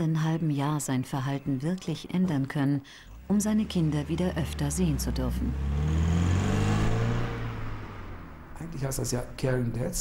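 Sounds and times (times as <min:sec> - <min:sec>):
car engine hum: 0:03.0 - 0:10.0.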